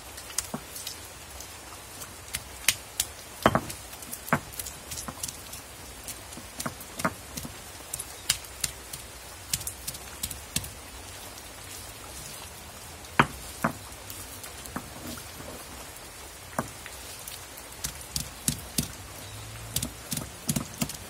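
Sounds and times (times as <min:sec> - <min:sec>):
steady hiss: 0:00.0 - 0:21.0
stone roller knocking on slab: 0:03.4 - 0:03.8, 0:19.8 - 0:21.0.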